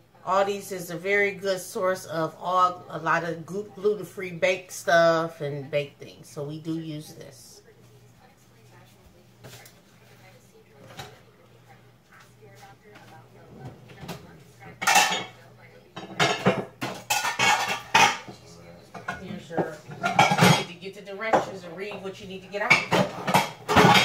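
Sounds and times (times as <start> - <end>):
kitchenware clattering on countertop: 13.6 - 15.4, 16.0 - 24.0.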